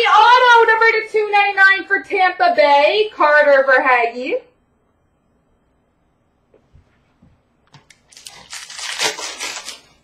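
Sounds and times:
card pack wrapper crinkling and tearing: 7.8s - 10.0s.

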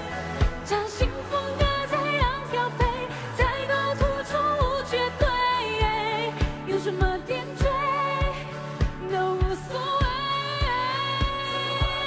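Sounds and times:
woman singing pop song: 0.0s - 12.0s.

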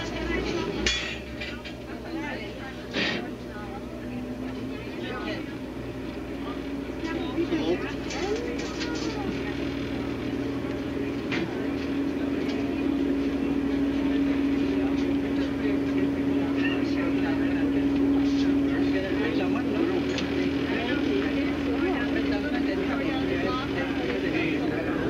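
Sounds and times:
indistinct background voices: 0.0s - 25.0s
steady low hum: 0.0s - 25.0s.

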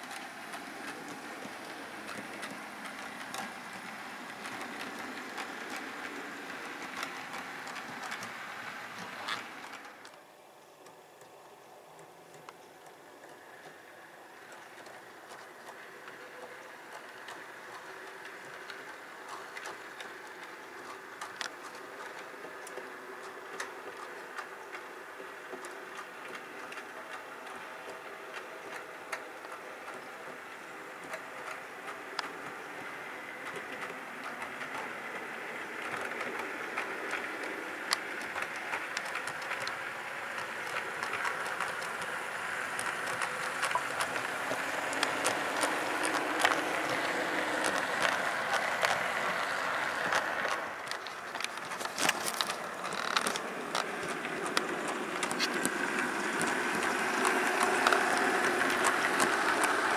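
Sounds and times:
model train motor whirr: 0.0s - 10.2s, 27.5s - 59.9s
wheel clicks over rail joints: 0.0s - 10.2s, 10.8s - 59.9s.

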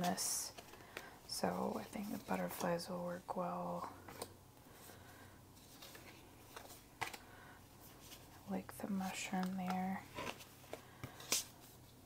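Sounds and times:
paper cards shuffling: 5.6s - 7.2s, 9.1s - 11.7s.

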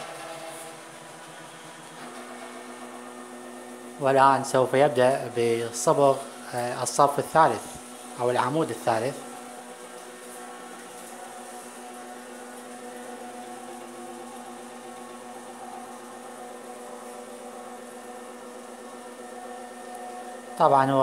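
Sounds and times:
steady electric hum: 0.0s - 21.0s.

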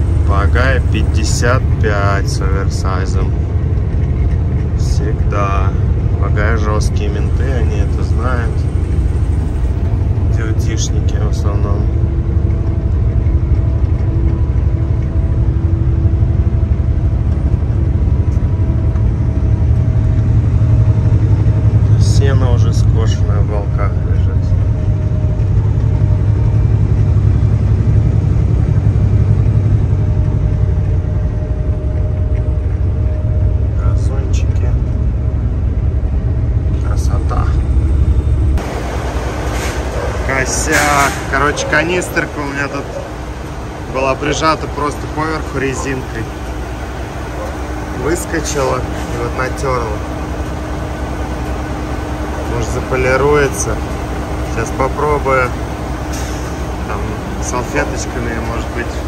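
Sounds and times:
diesel truck engine rumble: 0.0s - 59.0s.

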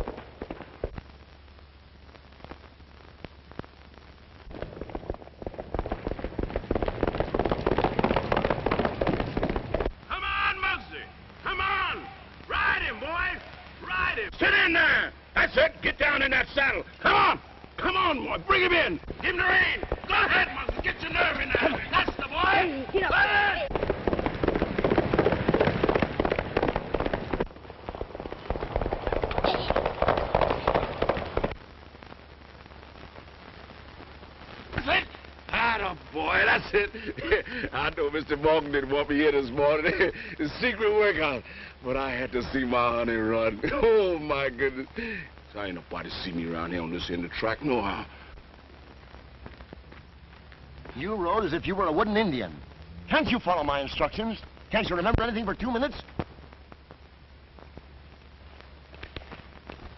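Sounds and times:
film soundtrack hiss: 0.0s - 59.9s
horse hoofbeats galloping: 4.6s - 9.9s, 19.6s - 31.5s
men shouting encouragement: 10.1s - 16.3s, 17.0s - 23.7s.

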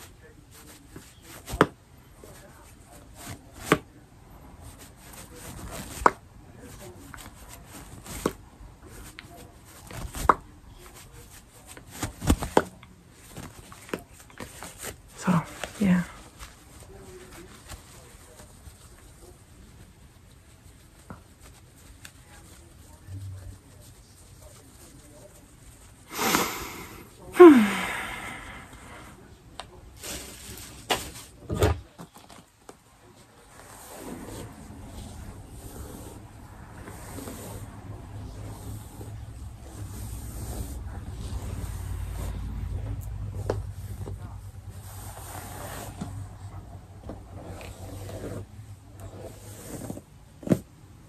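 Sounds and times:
fabric rustling: 4.6s - 26.1s
woman sighing: 26.1s - 28.9s.

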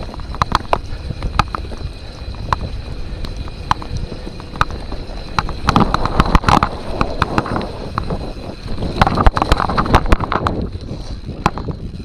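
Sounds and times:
bike knocking and rattling: 0.0s - 12.0s
tyres rumbling over dirt: 0.0s - 12.0s.

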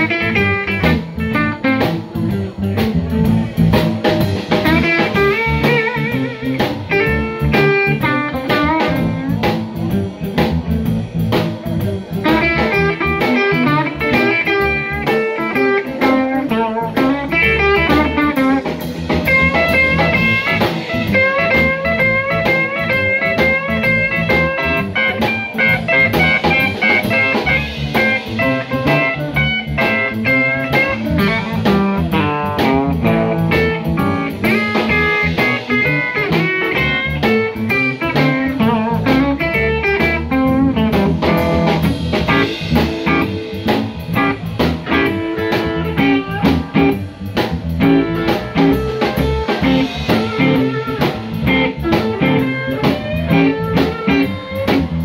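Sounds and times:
blues band playing: 0.0s - 55.0s
electric guitar lines: 0.0s - 55.0s.

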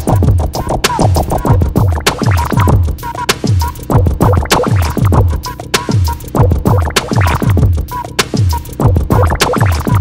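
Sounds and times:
background music with steady beat: 0.0s - 10.0s.

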